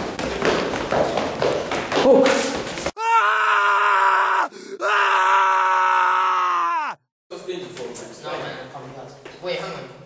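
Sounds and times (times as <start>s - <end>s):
person screaming: 3.0s - 7.1s.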